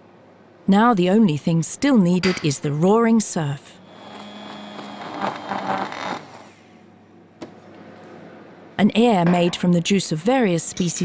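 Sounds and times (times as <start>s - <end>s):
small electric motor humming: 3.8s - 6.6s.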